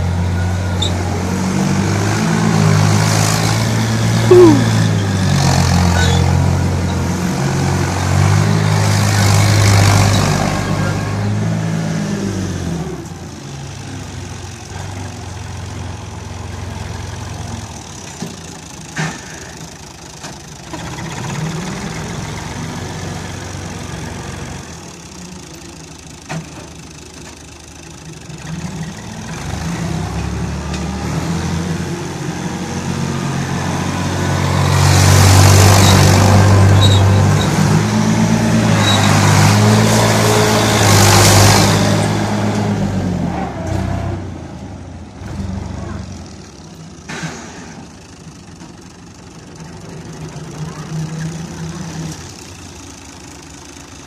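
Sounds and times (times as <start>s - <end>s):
tractor diesel engine revving: 0.0s - 18.8s, 27.6s - 54.0s.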